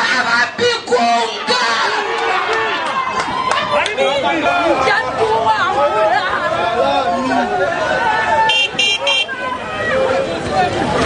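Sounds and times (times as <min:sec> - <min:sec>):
crowd chattering: 0:00.0 - 0:11.0.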